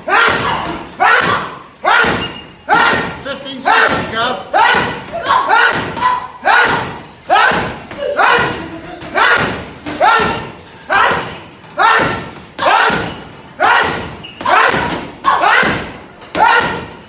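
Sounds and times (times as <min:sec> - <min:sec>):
boxing gloves slapping punch bag: 0:00.1 - 0:03.2, 0:03.8 - 0:17.0.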